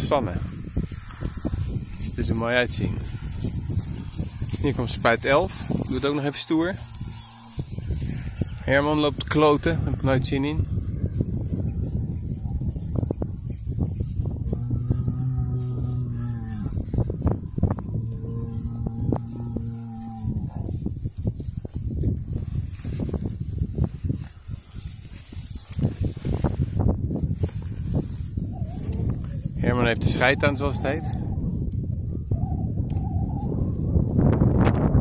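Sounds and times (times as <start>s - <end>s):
footsteps in dry grass: 0.0s - 32.0s
cow mooing: 14.5s - 16.9s, 17.8s - 20.7s.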